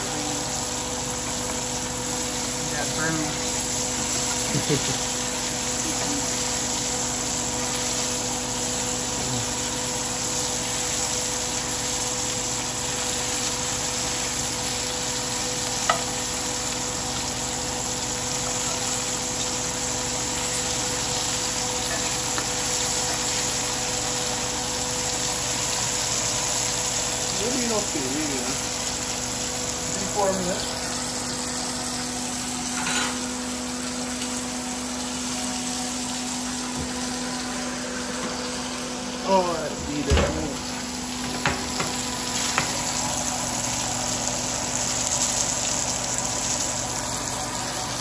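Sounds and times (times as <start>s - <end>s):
fish sizzling in hot oil: 0.0s - 48.0s.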